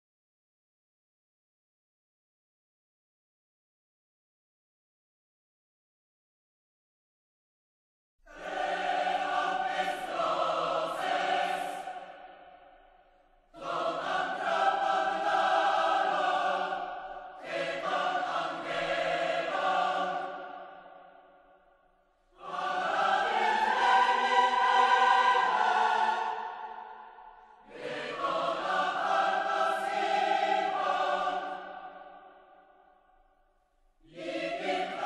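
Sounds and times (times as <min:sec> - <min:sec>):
choir singing sustained chords: 0:08.3 - 0:33.4, 0:34.0 - 0:35.0.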